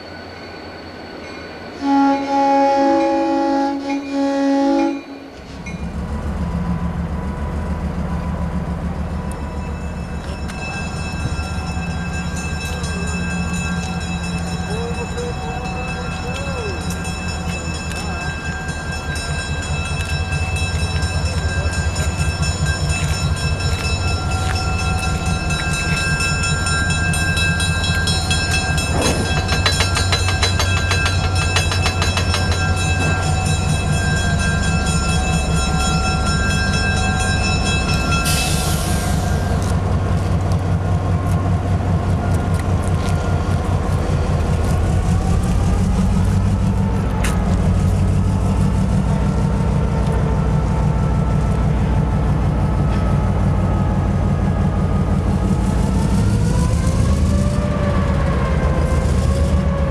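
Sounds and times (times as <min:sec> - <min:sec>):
diesel locomotive engine drone: 0:00.0 - 0:59.9
wheels clicking over rail joints: 0:16.2 - 0:38.2.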